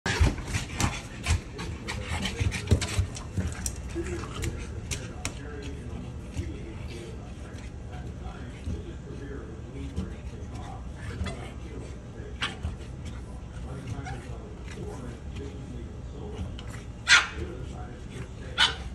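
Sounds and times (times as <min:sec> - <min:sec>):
dogs scrambling at a door: 0:00.0 - 0:08.8, 0:09.8 - 0:15.6
dogs panting: 0:00.0 - 0:18.9
dog barking: 0:17.0 - 0:17.4, 0:18.6 - 0:18.9.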